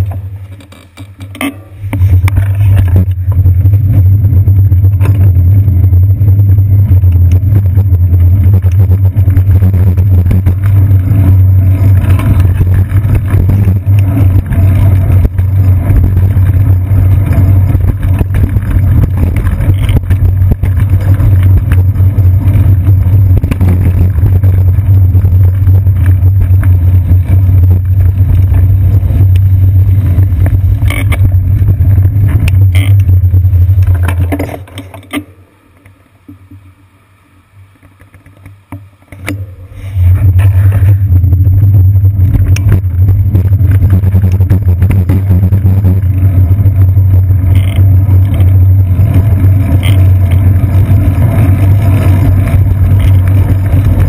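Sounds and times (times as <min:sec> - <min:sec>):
bicycle road vibration: 0:00.0 - 0:54.0
wind rumble: 0:01.4 - 0:35.2, 0:39.1 - 0:54.0.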